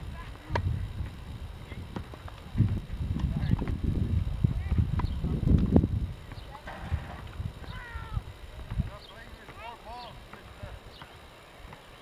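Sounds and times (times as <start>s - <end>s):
balls bouncing on hard court: 0.3s - 0.8s, 1.9s - 3.8s, 4.7s - 6.5s, 8.6s - 9.7s, 10.3s - 11.9s
tennis balls struck by rackets: 0.4s - 0.8s, 4.9s - 5.7s, 10.3s - 11.9s.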